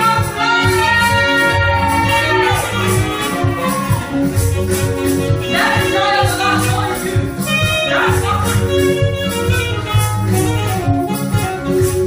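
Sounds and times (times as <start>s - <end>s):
backing singers: 0.0s - 9.1s
woman singing lead: 0.0s - 9.9s
gospel music with beat and bass: 0.0s - 12.0s.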